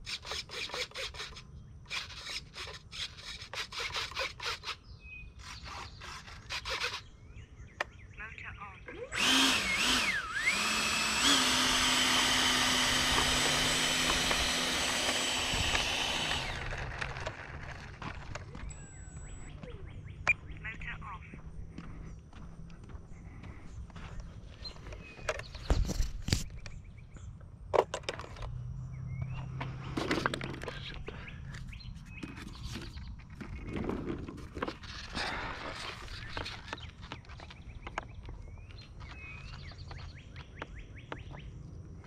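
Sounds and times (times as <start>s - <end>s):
model jet fan whine: 9.1s - 19.5s.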